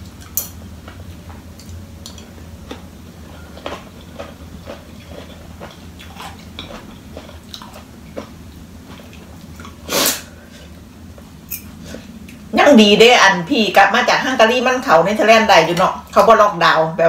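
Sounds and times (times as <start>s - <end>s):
chewing: 0.1s - 9.8s
cutlery clicking on a plate: 0.2s - 0.6s.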